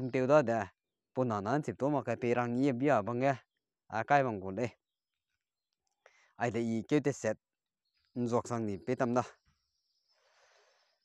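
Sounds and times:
man speaking: 0.0s - 4.8s, 6.4s - 7.4s, 8.2s - 9.3s.

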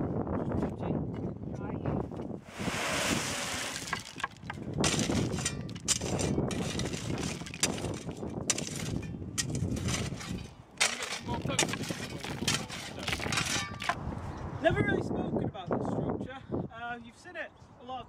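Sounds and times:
gravel pouring: 2.5s - 14.0s
shovels scraping gravel: 2.5s - 14.0s
stones clinking: 3.3s - 14.0s.

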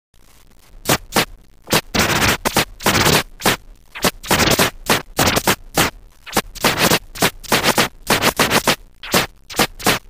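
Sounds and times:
vinyl record scratching: 0.3s - 10.0s.

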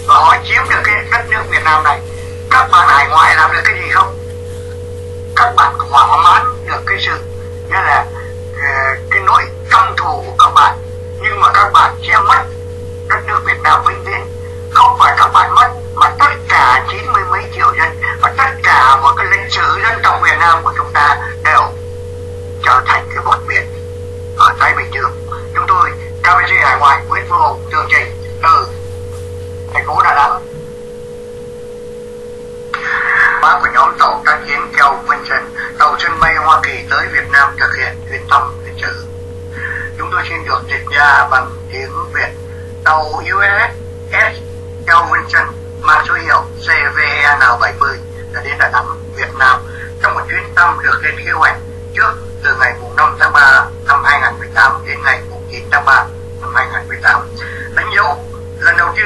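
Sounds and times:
man speaking over telephone line: 0.0s - 4.3s, 5.3s - 21.8s, 22.6s - 23.8s, 24.4s - 28.9s, 29.7s - 30.6s, 32.8s - 59.0s
voices: 0.0s - 21.8s, 22.6s - 23.8s, 24.4s - 30.6s, 32.8s - 59.0s
electrical hum: 0.0s - 59.0s
faint constant tone: 0.0s - 59.0s.

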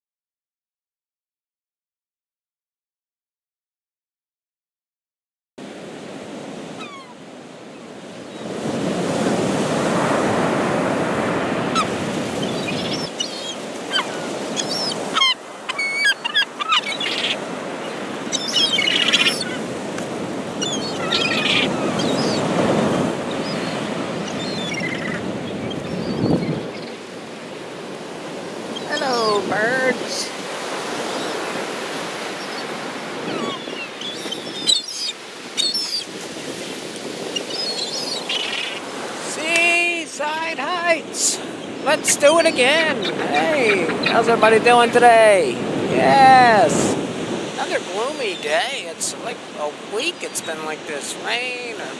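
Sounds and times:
gulls calling: 6.6s - 7.2s, 8.3s - 51.9s
surf breaking on beach: 7.4s - 51.9s.

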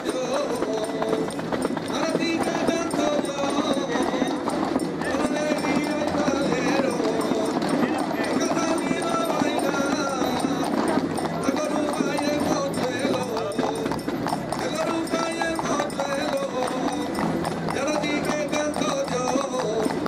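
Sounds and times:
hooves clip-clopping on pavement: 0.0s - 20.0s
music with singing: 0.0s - 20.0s
people's voices: 0.0s - 20.0s.

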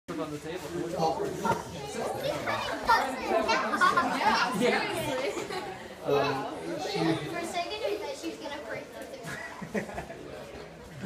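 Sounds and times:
children chattering: 0.6s - 11.0s.

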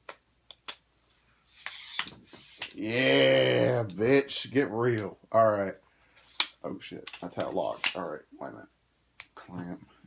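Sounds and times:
pole sections sliding out: 1.4s - 2.8s.

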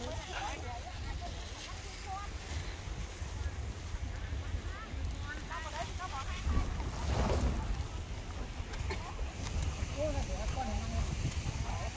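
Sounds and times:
faint people talking: 0.0s - 11.9s
wind buffeting microphone: 0.0s - 11.9s.

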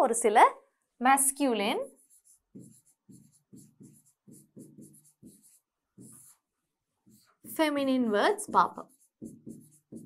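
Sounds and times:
pen strokes on whiteboard: 1.6s - 10.0s.

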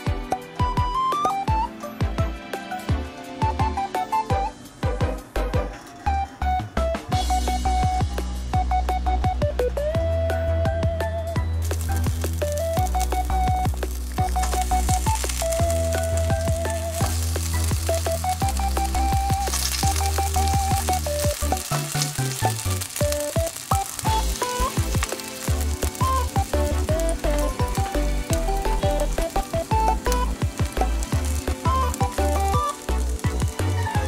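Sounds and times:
music with pulsing bass: 0.0s - 34.0s
shrimp sizzling in hot oil: 11.4s - 34.0s.

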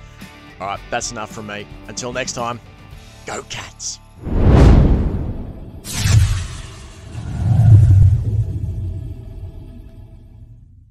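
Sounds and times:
low thunder rumble: 4.2s - 5.9s
lightning crack: 4.2s - 8.6s.

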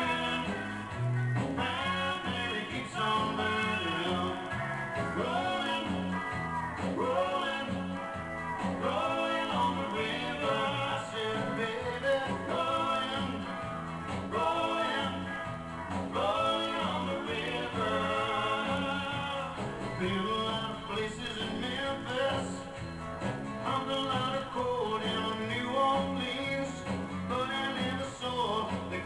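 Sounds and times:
man singing: 0.0s - 15.5s, 16.1s - 29.0s
live country band playing: 0.0s - 29.0s.

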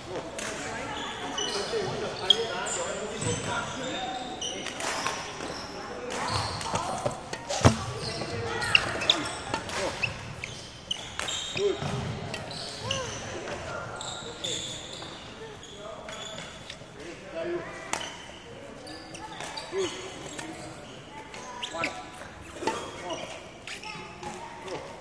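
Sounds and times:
shoe squeaks: 0.9s - 4.8s, 5.4s - 17.1s, 18.0s - 24.9s
rackets hitting shuttlecocks: 6.1s - 10.3s
footsteps on court: 6.3s - 8.4s.

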